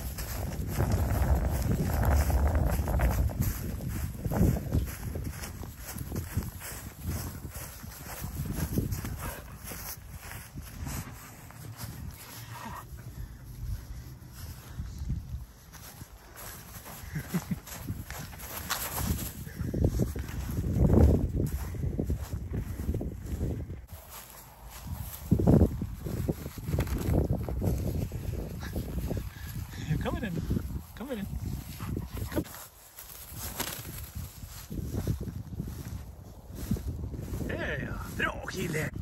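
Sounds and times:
dog paws running through dry grass: 0.0s - 37.5s
wind rumble on microphone: 0.0s - 39.0s.

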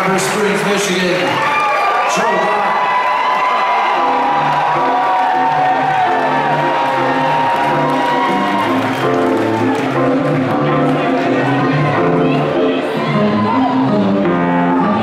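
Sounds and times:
crowd cheering: 0.0s - 15.0s
funk band playing: 3.8s - 15.0s
electric bass riff: 4.0s - 15.0s.

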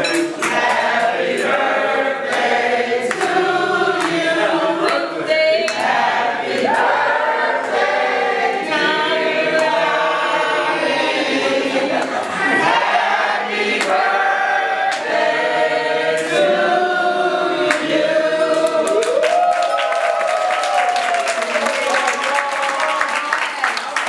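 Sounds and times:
people clapping: 0.0s - 8.0s, 13.6s - 14.2s, 17.6s - 24.0s
women singing together: 0.0s - 19.2s.

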